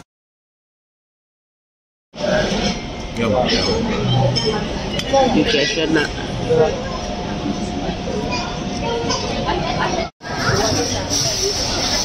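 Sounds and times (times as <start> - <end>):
chatter of many diners: 2.2 - 12.0
steady background noise: 2.2 - 12.0.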